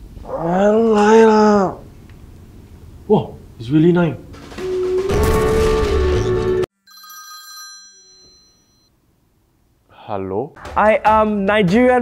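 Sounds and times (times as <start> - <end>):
phone ringtone: 6.8 - 8.9.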